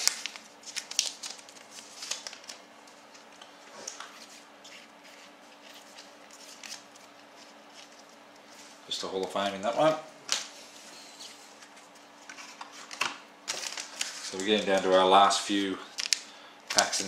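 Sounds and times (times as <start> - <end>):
card packet tearing open: 0.0 - 2.6
cards crinkling and clicking: 0.0 - 4.2, 5.2 - 8.4, 12.3 - 15.0, 15.9 - 17.0
faint steady hum: 0.0 - 17.0.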